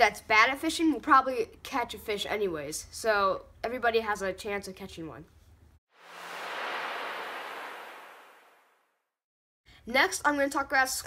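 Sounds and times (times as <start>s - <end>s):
rushing whoosh: 6.0s - 8.8s.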